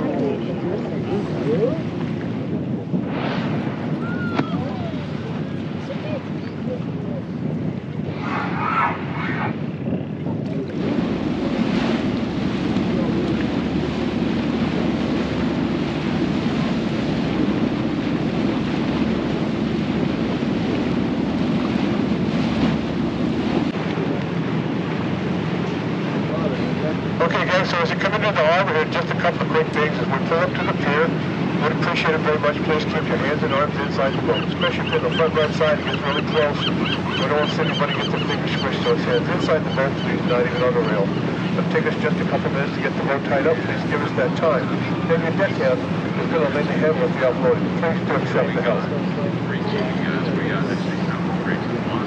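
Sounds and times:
faint voices: 0.0 - 2.4, 4.0 - 9.6, 25.1 - 52.0
wind on microphone: 0.0 - 28.2
boat engine drone: 0.0 - 52.0
water noise: 0.0 - 52.0.

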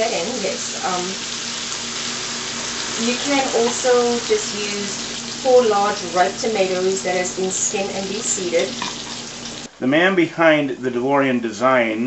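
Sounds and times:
food sizzling in a pan: 0.0 - 9.9.

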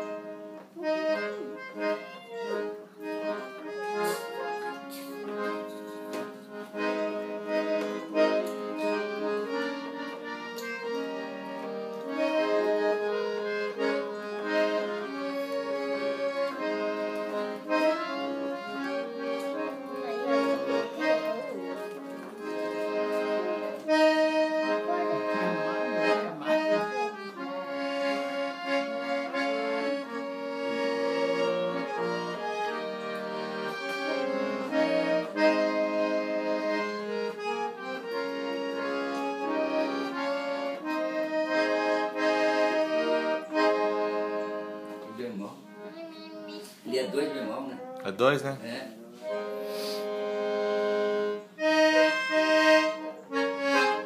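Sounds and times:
accordion melody: 0.0 - 54.0.

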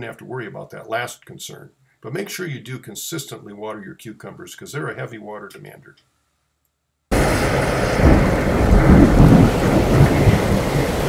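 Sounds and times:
rolling thunder: 7.1 - 11.0
steady rain: 7.1 - 11.0.

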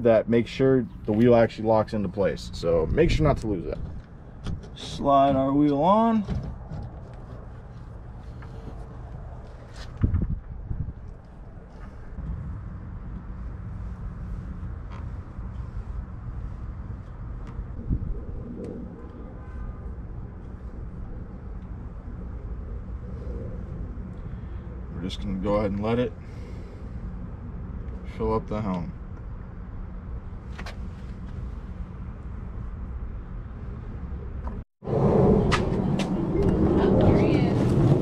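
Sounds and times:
low outdoor rumble: 0.0 - 38.0.

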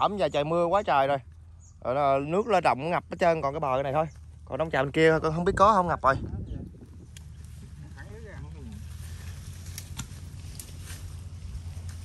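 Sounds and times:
low rumble: 0.0 - 12.0
twigs snapping: 6.8 - 8.0, 8.6 - 12.0
brush and netting rustling: 6.8 - 12.0.

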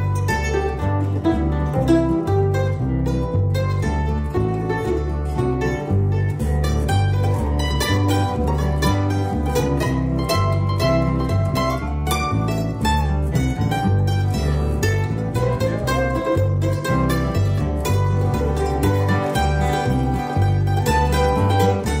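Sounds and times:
plucked mandolin: 0.0 - 22.0
strummed acoustic guitar: 0.0 - 22.0
walking bass line: 0.0 - 22.0.

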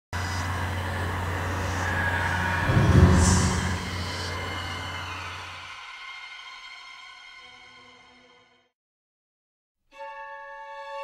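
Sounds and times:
low horror drone with hiss: 0.2 - 7.6.

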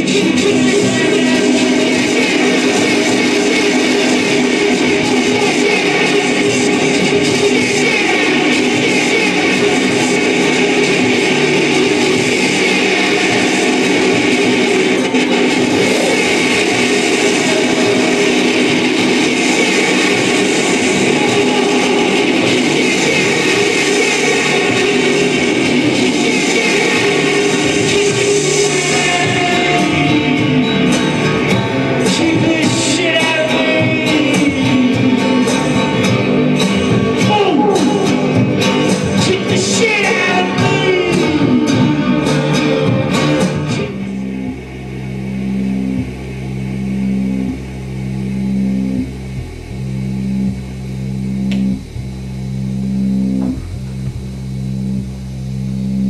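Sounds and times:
loud live electronic music: 0.0 - 56.0.

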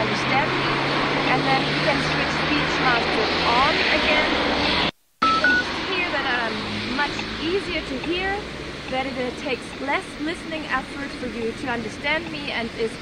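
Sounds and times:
traffic: 0.0 - 13.0
short beeps: 5.2 - 5.7.

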